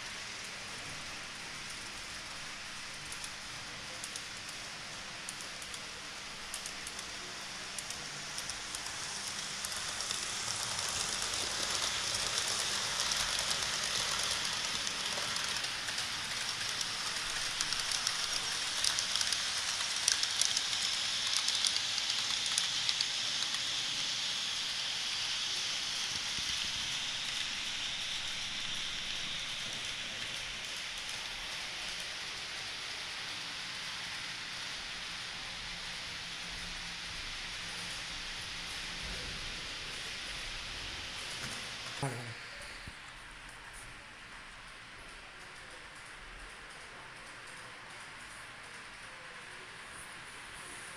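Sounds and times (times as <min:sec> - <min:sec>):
model train wheels rolling on rails: 0:00.0 - 0:50.9.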